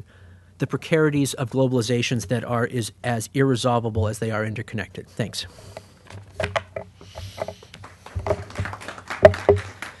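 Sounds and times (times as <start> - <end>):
taps and knocks on microphone: 6.4 - 9.8.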